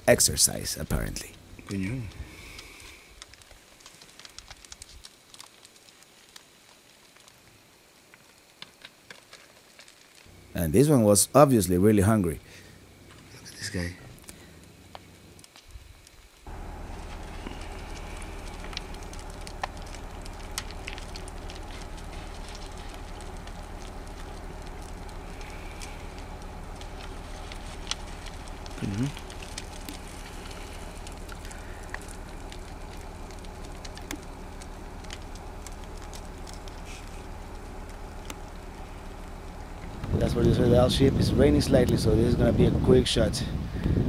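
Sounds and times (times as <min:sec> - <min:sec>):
vehicle engine idling: 0:00.0 - 0:03.2, 0:11.6 - 0:15.4, 0:16.4 - 0:44.0
faint ticks: 0:01.3 - 0:10.3.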